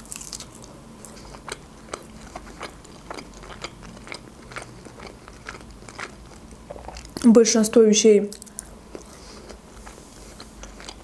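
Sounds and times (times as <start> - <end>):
person chewing crisp pastry: 0.0 - 7.3, 8.3 - 11.0.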